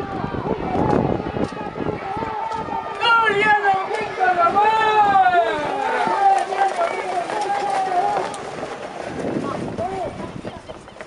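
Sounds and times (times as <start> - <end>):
hoofbeats and wheels on dirt: 2.2 - 11.0.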